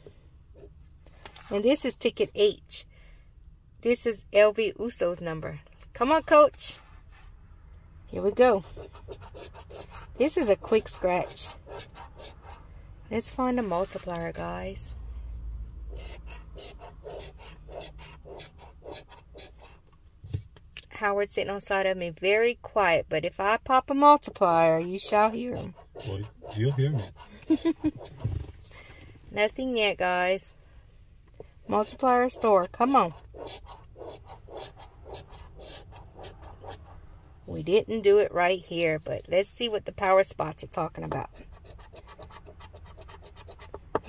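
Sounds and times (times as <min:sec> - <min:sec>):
scratch card being scratched: 0:08.7 - 0:12.6, 0:15.9 - 0:19.8, 0:24.8 - 0:28.7, 0:31.7 - 0:37.0, 0:41.2 - 0:44.0.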